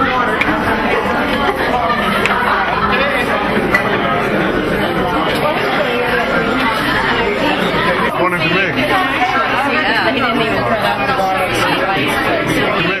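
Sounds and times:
babble of overlapping conversations: 0:00.0 - 0:13.0.

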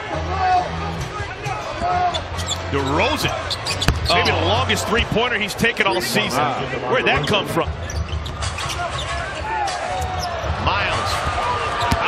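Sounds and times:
sneakers squeaking: 0:01.4 - 0:04.4, 0:07.8 - 0:09.4, 0:10.0 - 0:10.4, 0:11.2 - 0:12.0.

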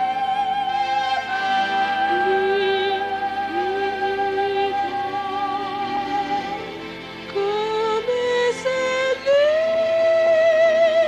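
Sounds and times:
orchestral backing: 0:00.0 - 0:10.8
high voice holding a long note: 0:00.0 - 0:11.0
female vocal ensemble singing: 0:01.7 - 0:06.6.

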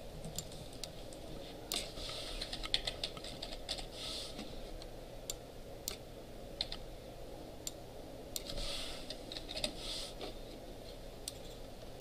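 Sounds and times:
low room hum: 0:00.0 - 0:12.0
keyboard typing: 0:01.7 - 0:03.9.

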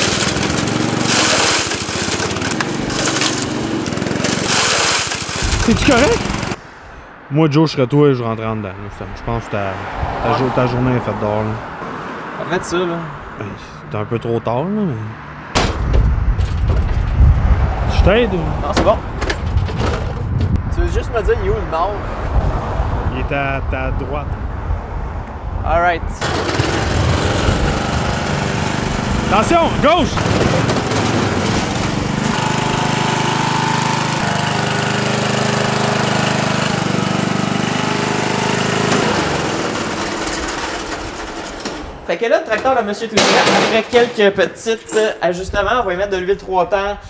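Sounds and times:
lawn tractor engine running: 0:00.0 - 0:06.6, 0:26.2 - 0:42.1
small gasoline engine putter: 0:00.0 - 0:06.6.

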